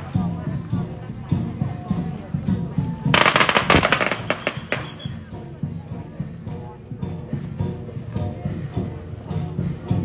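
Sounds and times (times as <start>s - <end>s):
music: 0.0s - 10.0s
firecrackers popping: 3.1s - 5.1s.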